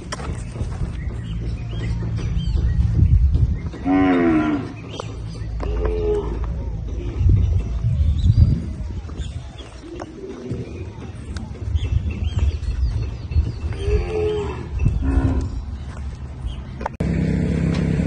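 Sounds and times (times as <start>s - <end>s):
cattle mooing: 3.8s - 4.8s.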